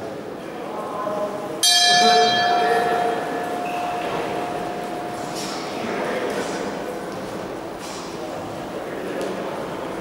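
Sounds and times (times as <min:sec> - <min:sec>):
boxing ring bell: 0:01.6 - 0:05.7.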